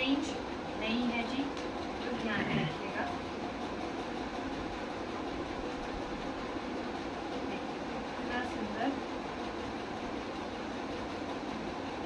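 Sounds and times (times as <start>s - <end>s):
steady fan noise: 0.0s - 12.0s.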